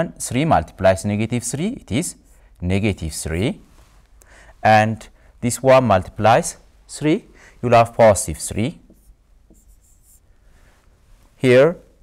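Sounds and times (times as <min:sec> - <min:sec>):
stylus scratching on screen: 0:08.4 - 0:10.3.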